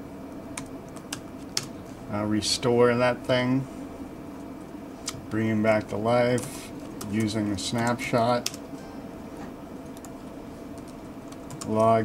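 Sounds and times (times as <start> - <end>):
laptop keyboard typing: 0.6 - 1.7, 5.8 - 8.6, 9.8 - 12.0.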